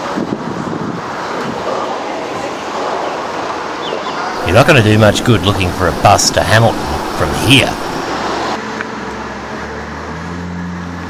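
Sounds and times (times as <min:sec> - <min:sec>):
wind buffeting microphone: 0:00.0 - 0:01.7
road traffic: 0:00.0 - 0:11.0
faint voices: 0:04.4 - 0:08.0.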